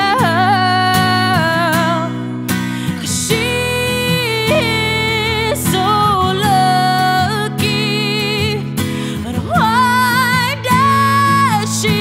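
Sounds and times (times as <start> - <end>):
acoustic guitar: 0.0 - 12.0
woman singing with vibrato: 0.0 - 12.0.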